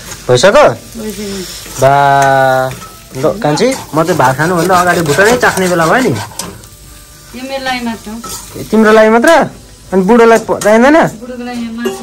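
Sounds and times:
meat frying and sizzling: 0.0s - 12.0s
spatula stirring in a pan: 1.2s - 6.7s.

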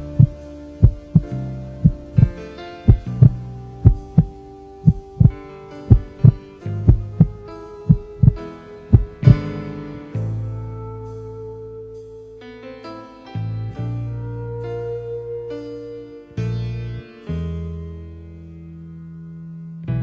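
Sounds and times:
heartbeat double thump: 0.0s - 4.3s, 4.9s - 9.4s
held background music tones: 0.0s - 20.0s.

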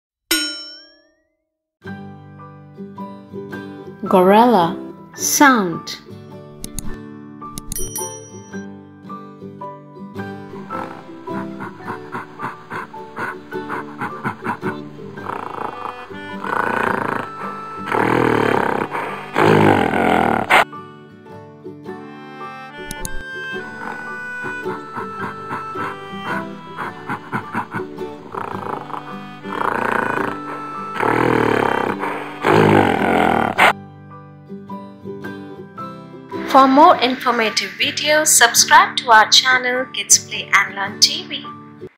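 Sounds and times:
bright metallic ding: 0.3s - 1.1s, 7.7s - 8.7s
light background music: 1.9s - 41.9s
gorilla roaring: 10.6s - 20.6s, 23.6s - 33.7s
plucked-string music: 20.6s - 29.8s.

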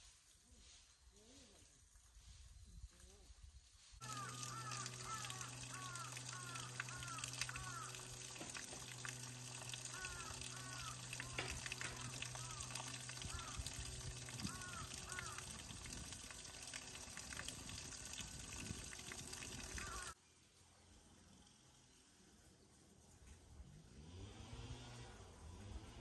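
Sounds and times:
crows cawing: 4.0s - 16.0s, 19.5s - 20.2s
water trickling over rock: 4.0s - 20.2s.

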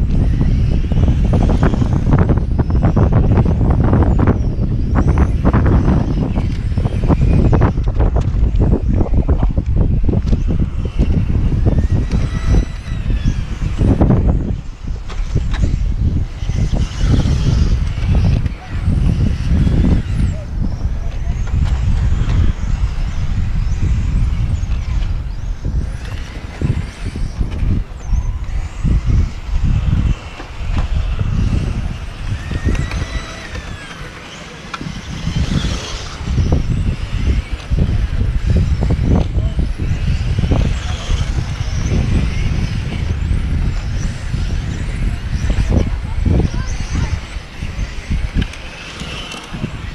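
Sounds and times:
toy car electric motors whining: 0.0s - 49.9s.

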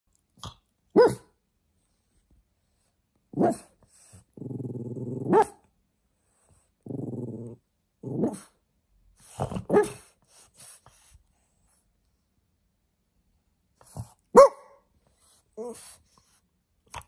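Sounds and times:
puppy barking: 0.9s - 1.3s, 14.3s - 14.8s
low drawn-out growls: 6.8s - 8.2s.

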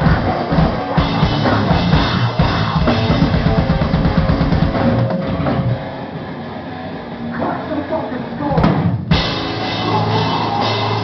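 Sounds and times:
fast dense drumming: 0.0s - 5.8s, 8.5s - 11.0s
death metal band playing live: 0.0s - 11.0s
guitar: 0.0s - 11.0s.

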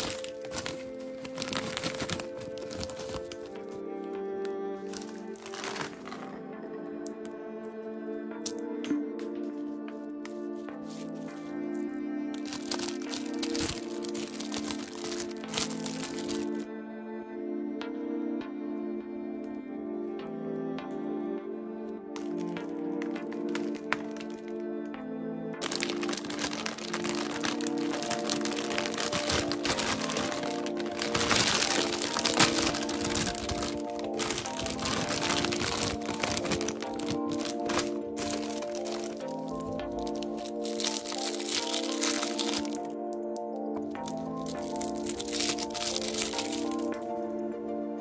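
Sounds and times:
plastic candy bag crinkling: 0.0s - 6.4s, 10.8s - 11.6s, 12.4s - 16.6s, 22.2s - 24.6s, 25.6s - 47.2s
light background music: 0.0s - 48.0s.

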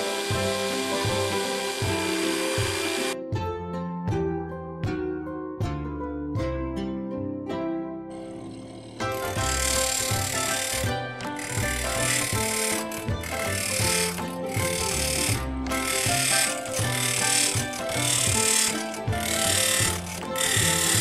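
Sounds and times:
bench grinder grinding a nail: 0.0s - 3.2s, 8.1s - 21.0s
music with plucked notes: 0.0s - 21.0s.

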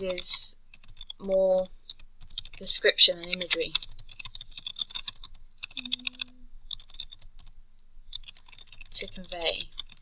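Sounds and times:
computer keyboard typing: 0.0s - 7.5s, 8.1s - 10.0s.

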